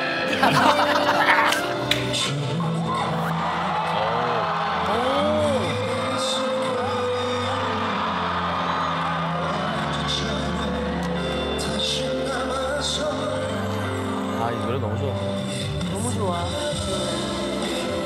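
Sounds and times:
audience cheering and shouting: 0:00.0 - 0:14.4
whoops and screams: 0:02.8 - 0:11.4.

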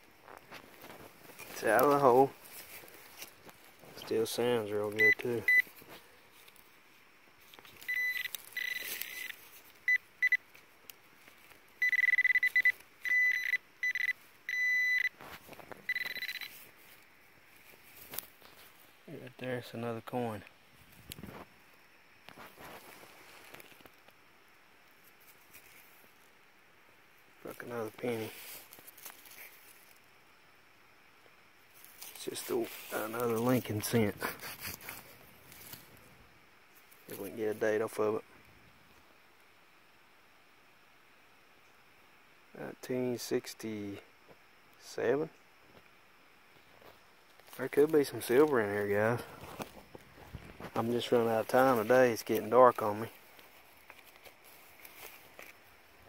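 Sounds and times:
faint outdoor background hiss: 0:00.0 - 0:56.0
metal detector beeping: 0:04.9 - 0:05.7, 0:07.8 - 0:10.4, 0:11.8 - 0:15.2, 0:15.8 - 0:16.7.

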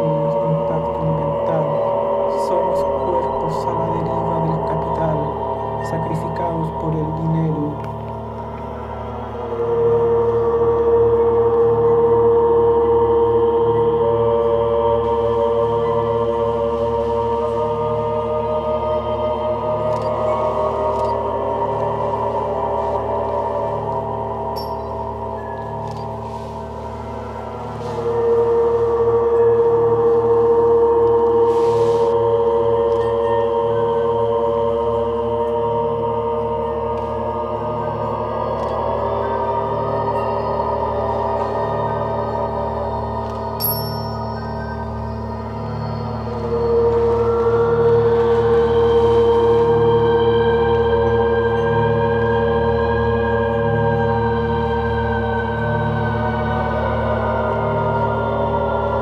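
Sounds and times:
low pulsing beat: 0:00.0 - 0:43.6
ambient drone music: 0:00.0 - 0:59.0.

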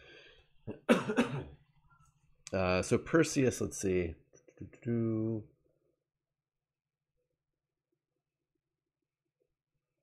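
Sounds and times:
man coughing: 0:00.7 - 0:01.6.

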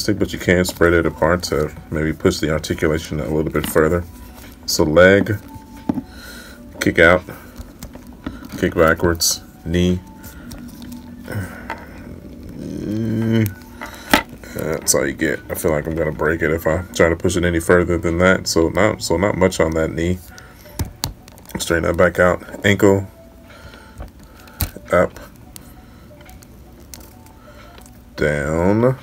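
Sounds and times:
person speaking: 0:00.0 - 0:05.7, 0:11.2 - 0:20.4
man humming: 0:11.2 - 0:13.7.

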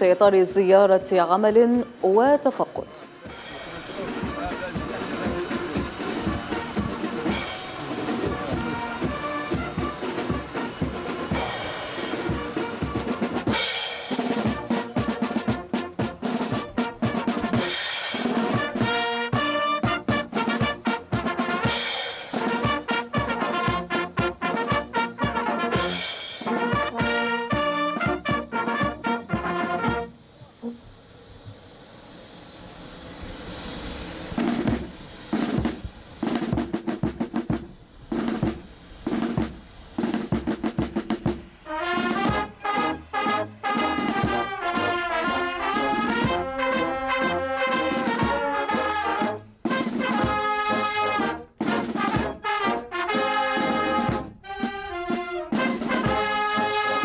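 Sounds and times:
voices: 0:00.0 - 0:13.3
drums beating quick rhythm: 0:00.0 - 0:30.1, 0:34.4 - 0:57.0
jet engines rushing: 0:00.0 - 0:57.0.

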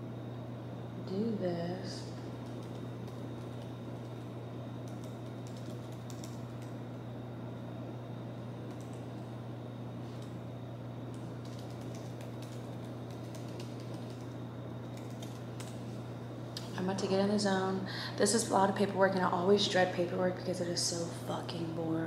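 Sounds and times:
steady low hum: 0:00.0 - 0:22.0
typing on laptop keyboard: 0:02.4 - 0:06.8, 0:08.7 - 0:09.2, 0:11.1 - 0:15.8.

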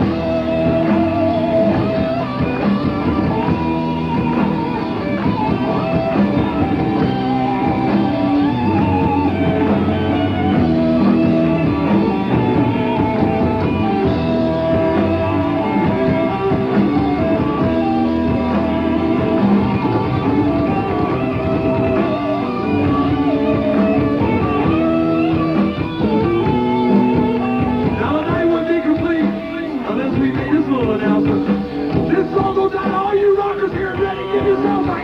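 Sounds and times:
electric guitar held notes: 0:00.0 - 0:33.0
rock band playing: 0:00.0 - 0:35.0.

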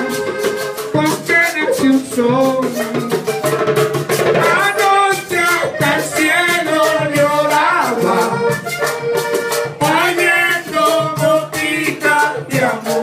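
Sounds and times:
button accordion melody: 0:00.0 - 0:13.0
drum rhythm: 0:00.0 - 0:13.0
metal scraper rhythm: 0:00.0 - 0:13.0.

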